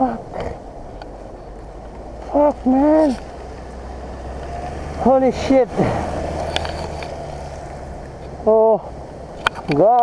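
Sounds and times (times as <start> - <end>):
road noise on dirt: 0.0 - 10.0.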